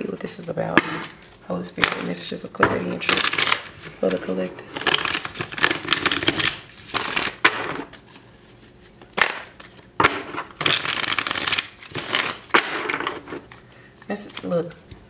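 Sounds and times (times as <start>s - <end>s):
cards being shuffled: 0.0s - 14.8s.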